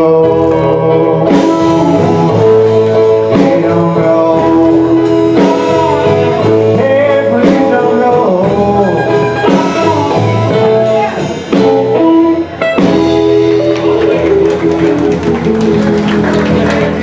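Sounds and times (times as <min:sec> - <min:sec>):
electric guitar bending notes: 0:00.0 - 0:17.0
live blues band: 0:00.0 - 0:17.0.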